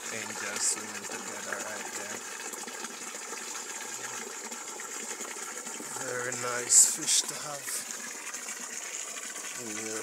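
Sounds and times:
water running into a pond: 0.0s - 10.0s.

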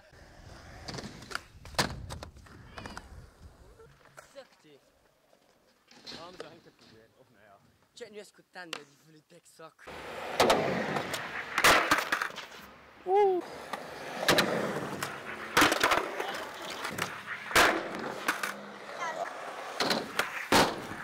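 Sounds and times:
skateboard wheels rolling on concrete: 0.0s - 7.7s, 9.8s - 21.0s
skateboard pops and landings: 0.8s - 3.1s, 9.9s - 12.8s, 13.5s - 21.0s.

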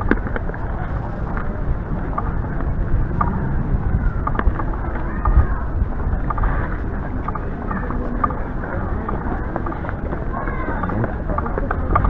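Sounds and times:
faint voice: 3.3s - 12.0s.

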